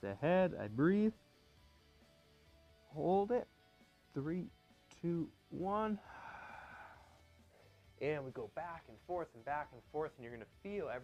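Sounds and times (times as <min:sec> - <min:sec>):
man breathing out: 0:06.0 - 0:07.8.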